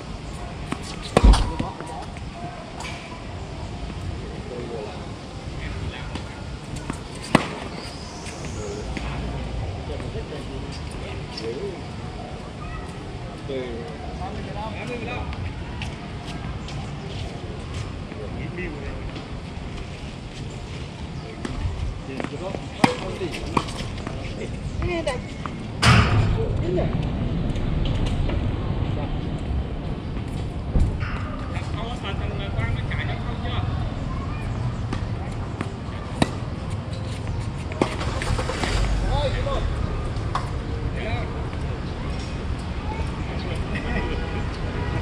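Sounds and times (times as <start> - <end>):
tennis ball racquet hits: 6.8 - 7.8.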